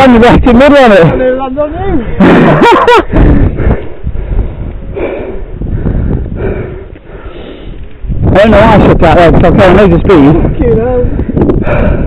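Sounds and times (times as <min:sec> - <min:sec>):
man laughing: 0:02.0 - 0:03.4
rumbling microphone noise: 0:02.0 - 0:12.0
man breathing hard: 0:03.1 - 0:08.1, 0:10.4 - 0:12.0.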